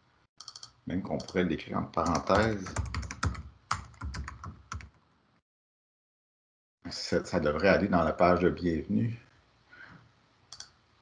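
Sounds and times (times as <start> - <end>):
typing on computer keyboard: 0.4 - 1.4, 2.0 - 5.0.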